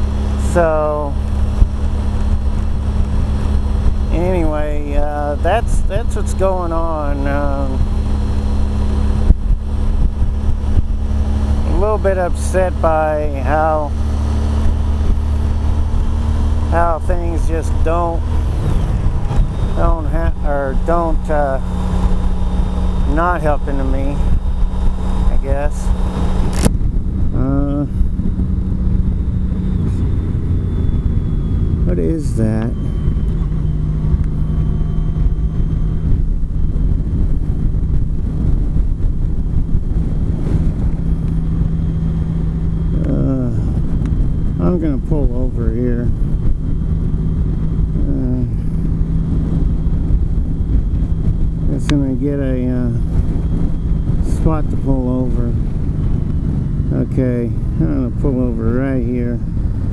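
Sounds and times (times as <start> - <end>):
motorcycle engine drone: 0.0 - 59.9
wind rush on microphone: 0.0 - 59.9.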